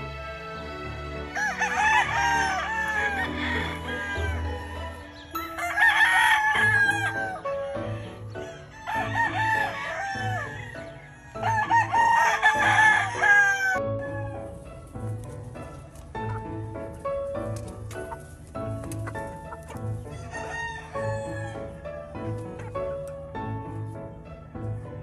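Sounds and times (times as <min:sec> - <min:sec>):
rooster crowing: 0:01.3 - 0:14.5, 0:20.1 - 0:21.8.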